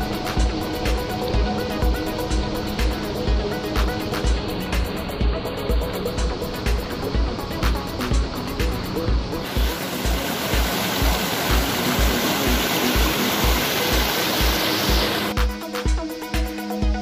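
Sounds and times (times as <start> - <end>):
water rushing over boulders: 0.0 - 15.4
electronic dance music: 9.4 - 17.0.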